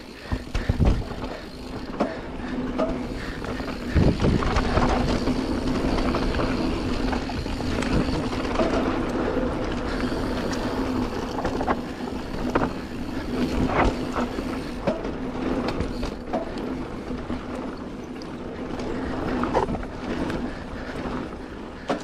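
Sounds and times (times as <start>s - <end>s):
bike rattling over bumps: 0.0s - 22.0s
tyres rolling on dirt: 0.0s - 22.0s
wind noise: 0.2s - 1.8s, 3.0s - 14.8s.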